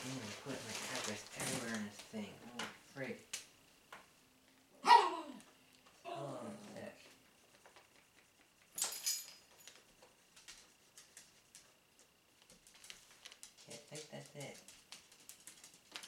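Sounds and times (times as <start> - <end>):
plastic package rustling: 0.0 - 2.2, 12.4 - 13.8.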